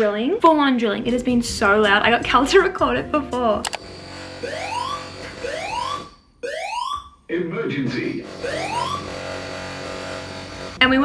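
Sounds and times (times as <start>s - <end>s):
fire alarm rising whoop: 4.2s - 7.2s, 8.3s - 9.4s.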